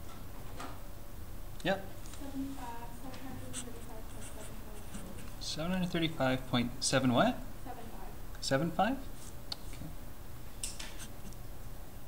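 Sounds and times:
marker scratching on paper: 3.0s - 5.4s, 10.8s - 11.3s.

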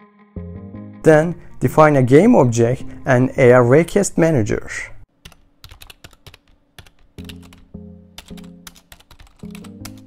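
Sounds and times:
background music sustained notes: 0.0s - 4.0s, 7.2s - 10.0s
keyboard typing clicks: 5.2s - 10.0s.

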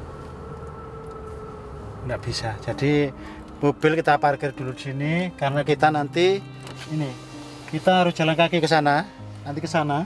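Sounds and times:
car engine and tyre rumble: 0.0s - 10.0s.

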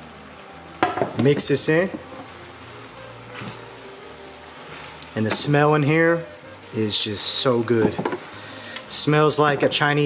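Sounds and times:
noodles sizzling in a pan: 0.0s - 10.0s.

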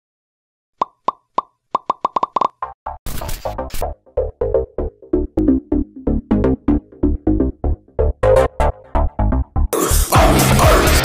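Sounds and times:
electronic music with heavy beat: 3.6s - 11.0s.

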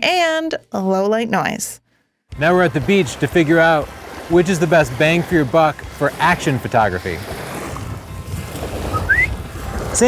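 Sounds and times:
wind: 2.3s - 10.0s
small waves breaking on sand: 2.4s - 10.0s
short rising whistle: 8.9s - 9.4s.

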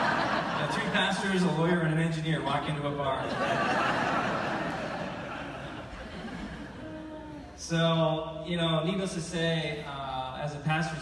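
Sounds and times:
audience laughing: 0.0s - 1.6s, 3.2s - 7.2s.

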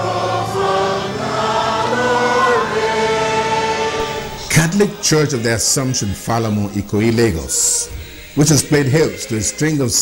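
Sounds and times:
choir singing long held notes: 0.0s - 10.0s
steady low tone: 4.0s - 7.2s.

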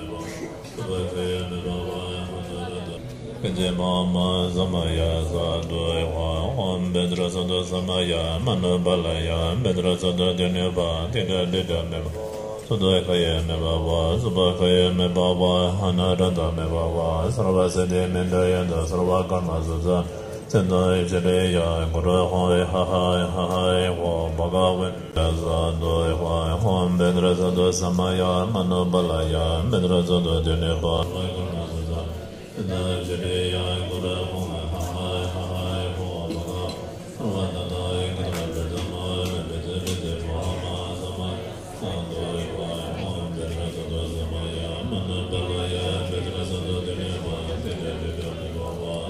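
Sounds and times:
monks chanting in unison: 0.0s - 49.0s.

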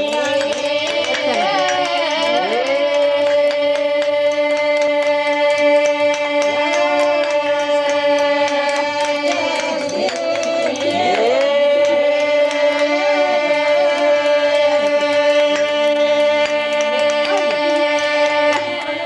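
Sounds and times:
folk music drone and melody: 0.0s - 19.0s.

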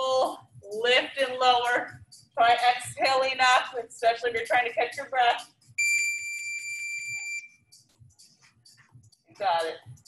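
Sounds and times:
high-pitched electronic beep: 5.8s - 7.5s.

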